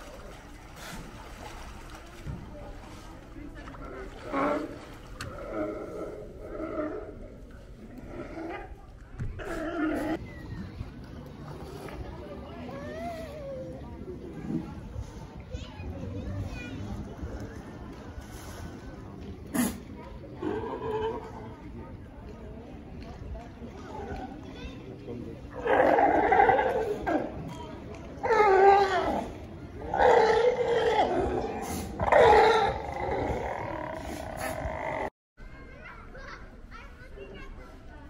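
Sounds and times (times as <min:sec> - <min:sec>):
people and children talking: 0:00.0 - 0:38.0
sea lions barking: 0:25.5 - 0:27.5, 0:28.2 - 0:35.1.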